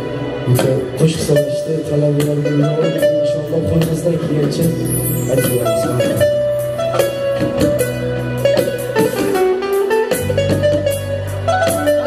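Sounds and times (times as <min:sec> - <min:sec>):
keyboard melody: 0:00.0 - 0:12.0
sustained bass line: 0:00.0 - 0:12.0
frame drum and hand drum beats: 0:00.5 - 0:12.0.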